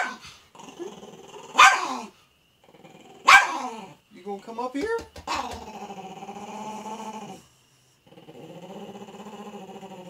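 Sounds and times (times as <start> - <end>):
small dog barking: 0.0 - 0.2, 1.6 - 2.1, 3.2 - 3.8
small dog growling: 0.0 - 4.0, 5.3 - 10.0.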